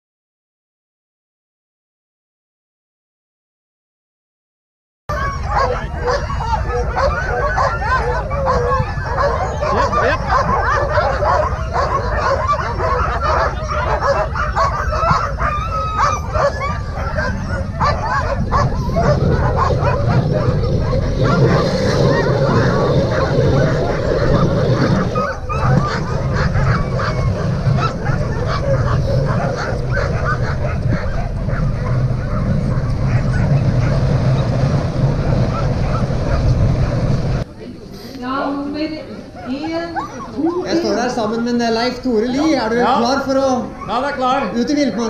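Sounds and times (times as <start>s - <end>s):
dogs barking and yelping: 5.1s - 37.4s, 39.1s - 45.0s
steady low rumble: 5.2s - 37.6s.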